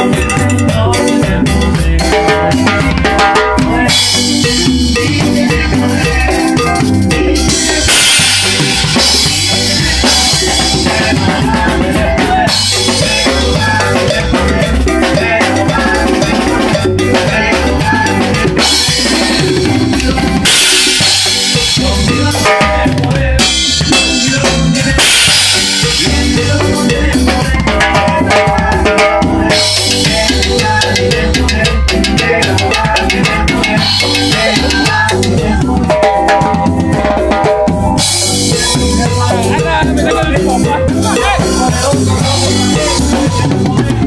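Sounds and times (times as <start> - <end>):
band playing live: 0.0 - 44.0
snare and bass drum beat: 0.0 - 44.0.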